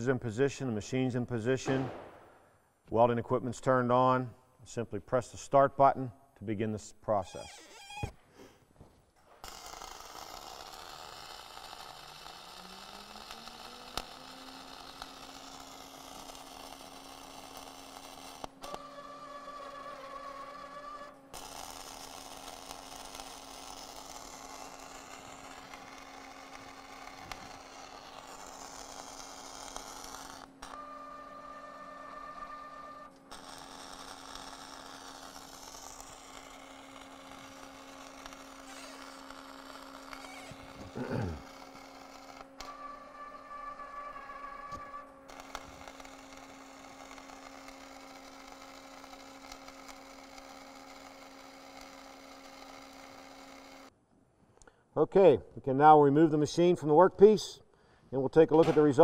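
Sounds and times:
welding arc hissing: 0:09.2 - 0:32.6, 0:33.2 - 0:53.9
gear-drive motor whirring: 0:09.4 - 0:53.9.

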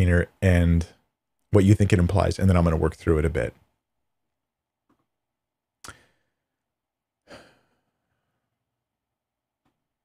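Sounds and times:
man sighing: 0:07.2 - 0:08.1.

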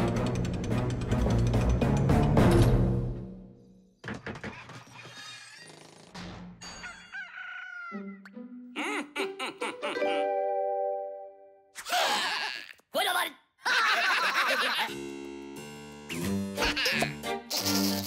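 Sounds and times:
rooster crowing: 0:06.8 - 0:08.1
cartoon music: 0:07.9 - 0:11.7
cartoon sound effects: 0:16.6 - 0:18.0.

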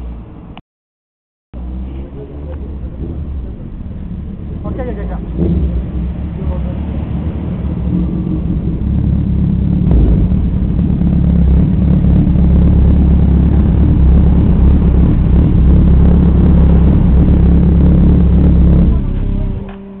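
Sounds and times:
motorcycle engines idling: 0:01.6 - 0:20.0.

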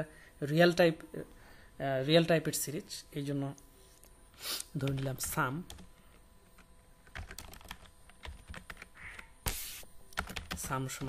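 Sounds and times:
computer keyboard typing: 0:04.8 - 0:11.0.

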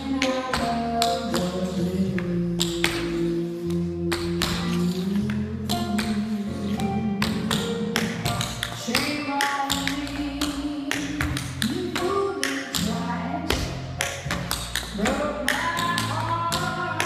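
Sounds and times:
backing music track: 0:00.0 - 0:17.0.

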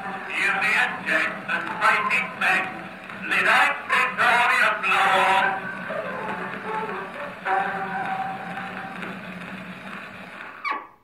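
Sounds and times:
cylinder record music from horn: 0:00.0 - 0:10.4
record surface hiss: 0:00.0 - 0:11.0.

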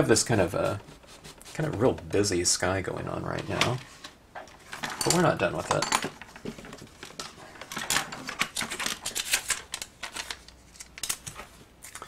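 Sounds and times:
paper rustling: 0:03.3 - 0:11.7.

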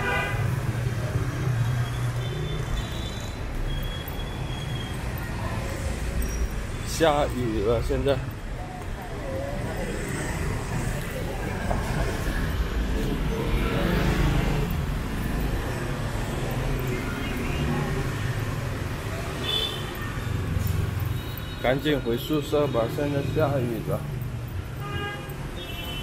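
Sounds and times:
faint voices: 0:05.0 - 0:20.6.

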